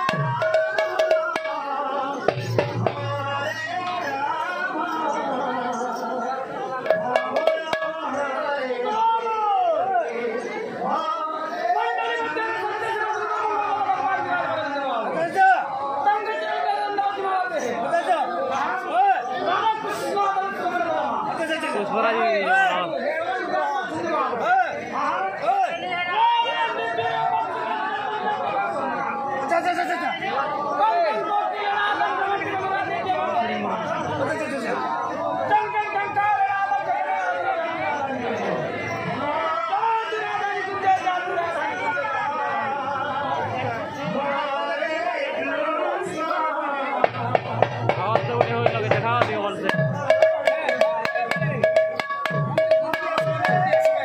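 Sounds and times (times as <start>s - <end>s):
overlapping voices: 0.0s - 14.4s, 30.3s - 54.0s
crowd chatter: 0.0s - 54.0s
people talking and calling out: 0.0s - 54.0s
man speaking through loudspeaker: 45.8s - 51.8s.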